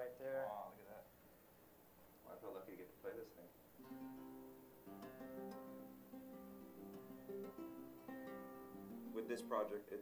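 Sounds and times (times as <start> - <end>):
acoustic guitar picked slowly: 3.8 - 10.0.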